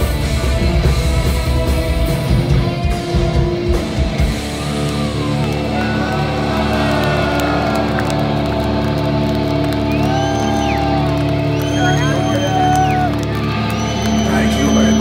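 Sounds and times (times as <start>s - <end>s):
drums: 0.0s - 15.0s
crowd cheering and whistling: 3.1s - 15.0s.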